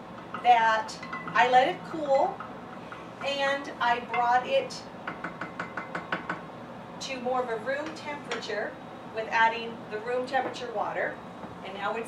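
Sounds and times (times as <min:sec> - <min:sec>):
wooden spoon knocking on glass jar: 0:05.1 - 0:06.4.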